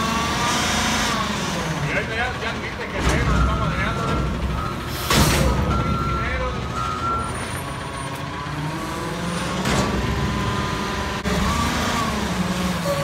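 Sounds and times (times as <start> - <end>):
truck diesel engine running: 0.0 - 13.0.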